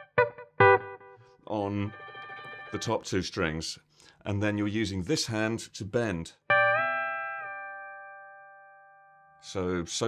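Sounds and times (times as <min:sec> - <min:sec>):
electric guitar bent notes ringing: 0:01.8 - 0:03.0.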